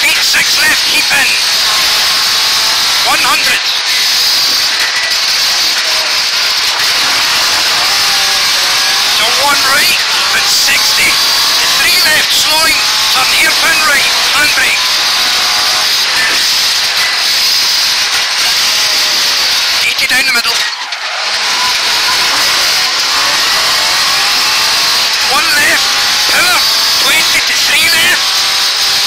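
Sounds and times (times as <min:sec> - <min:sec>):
car engine revving hard: 0:00.0 - 0:29.0.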